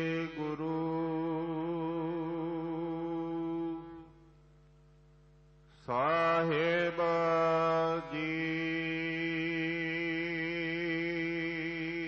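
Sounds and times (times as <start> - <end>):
man chanting: 0.0 - 4.1, 5.8 - 12.0.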